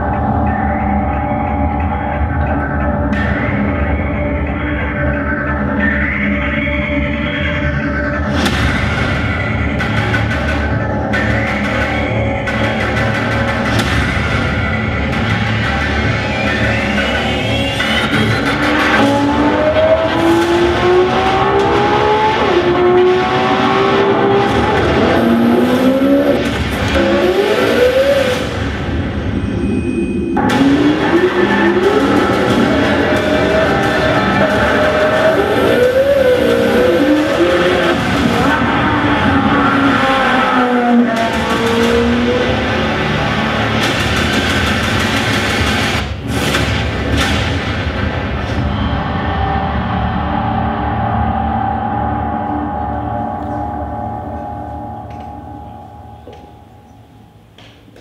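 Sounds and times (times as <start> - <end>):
music soundtrack: 0.0 - 58.0
tires squealing: 14.9 - 46.5
car engine revving hard: 18.0 - 29.2, 30.4 - 47.4.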